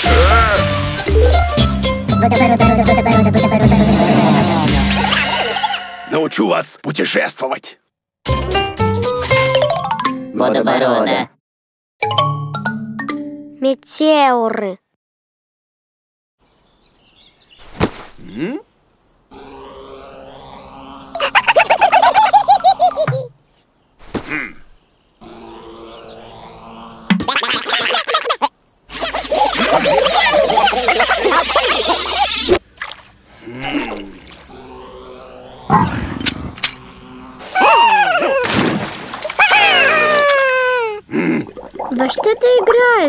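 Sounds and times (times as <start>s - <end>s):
cartoon sound effects: 0.0s - 1.5s, 2.2s - 6.2s, 37.4s - 38.6s
whirling cartoon effect: 2.3s - 6.4s, 19.3s - 23.3s, 25.2s - 32.6s, 33.4s - 38.6s
steady hum: 25.1s - 27.2s, 28.6s - 39.2s
bouncy high cartoon chirps: 27.2s - 32.6s.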